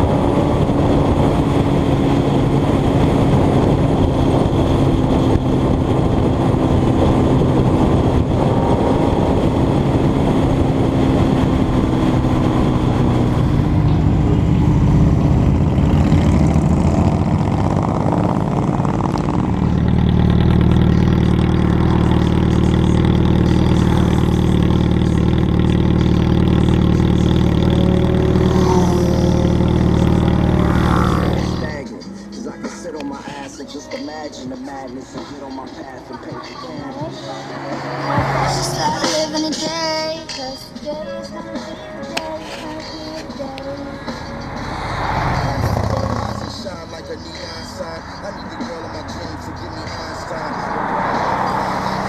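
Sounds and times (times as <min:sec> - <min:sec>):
motorcycle engines idling: 0:10.9 - 0:52.0.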